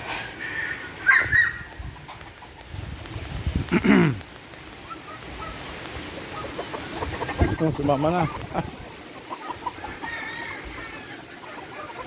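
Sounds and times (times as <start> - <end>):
roosters crowing: 0.0 - 2.5, 4.8 - 12.0.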